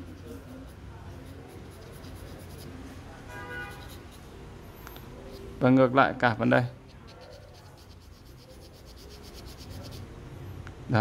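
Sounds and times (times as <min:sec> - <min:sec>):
pencil scratching on paper: 0:00.0 - 0:04.4, 0:06.8 - 0:10.1.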